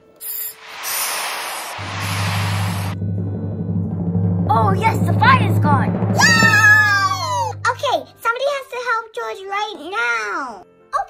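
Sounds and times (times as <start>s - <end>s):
hissing water spray: 0.0s - 3.0s
low musical drone: 1.7s - 8.2s.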